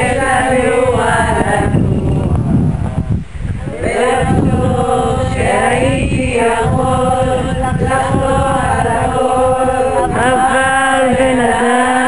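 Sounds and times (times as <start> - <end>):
group singing in unison: 0.0 - 12.0.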